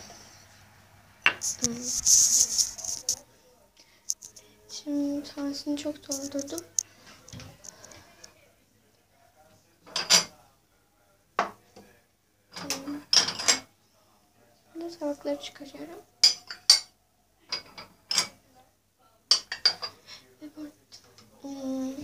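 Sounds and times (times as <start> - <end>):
china dishes clinking: 16.2 - 16.9, 17.5 - 18.4, 19.3 - 20.0.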